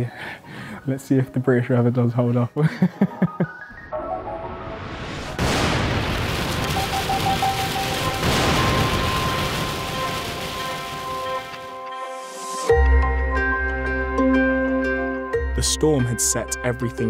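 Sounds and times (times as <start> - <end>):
heavy rain falling: 5.3 - 11.9
soft background music: 11.7 - 17.0.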